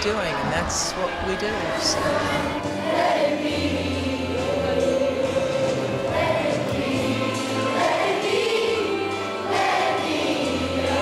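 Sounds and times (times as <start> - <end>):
group of voices singing: 0.3 - 11.0.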